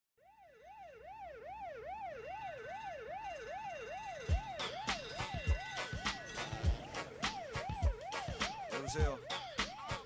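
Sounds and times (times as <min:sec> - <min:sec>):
siren wailing: 0:00.2 - 0:10.0.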